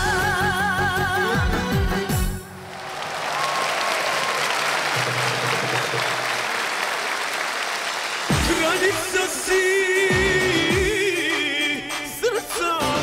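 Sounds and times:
audience applauding: 2.5 - 9.8
band playing a beat: 8.3 - 13.0.

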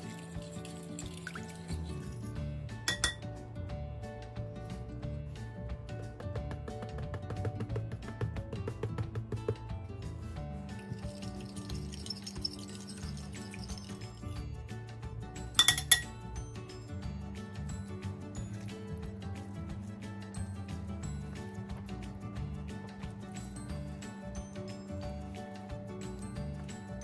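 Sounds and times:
background music with beat: 2.4 - 27.0
kitchenware clink: 2.9 - 3.2, 15.6 - 16.1.

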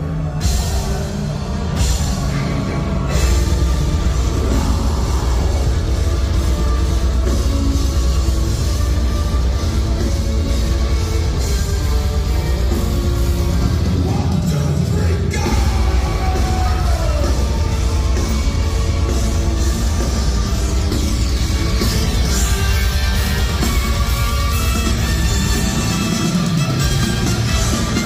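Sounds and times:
metal band playing live: 0.0 - 28.0.

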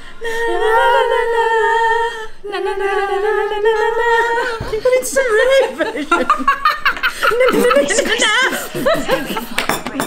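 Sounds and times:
women singing held notes: 0.2 - 5.6.

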